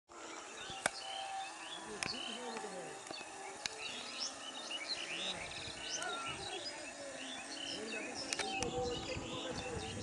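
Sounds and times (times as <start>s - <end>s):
insects buzzing: 0.1s - 10.0s
small birds chirping: 0.1s - 10.0s
sharp click: 0.7s - 1.0s, 8.3s - 8.8s.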